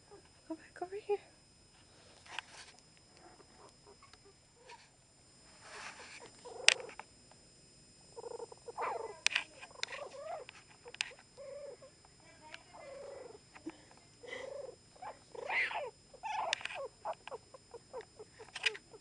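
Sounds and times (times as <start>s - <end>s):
puppies whimpering: 8.2s - 11.9s, 12.7s - 13.4s, 14.2s - 18.8s
sharp clicks: 16.3s - 17.4s.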